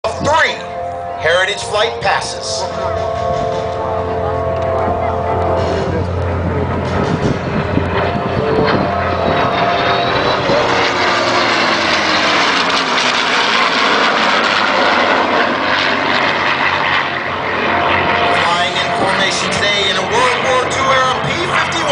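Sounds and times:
propeller engine drone: 0.0s - 21.9s
jet flying past: 0.1s - 21.9s.

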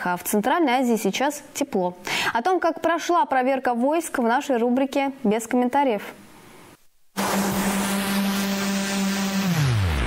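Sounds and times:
low hum sliding down: 7.2s - 10.0s.

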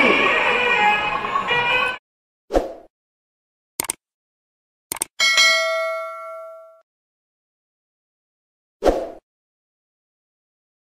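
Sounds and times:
mouse double click: 3.8s - 4.0s, 4.9s - 5.1s
bright bell ding: 5.2s - 6.8s.

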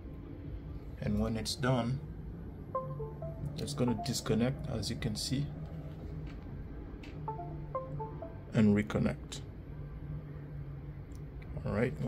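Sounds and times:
falling electronic chime tones: 2.8s - 4.5s, 7.3s - 8.6s.

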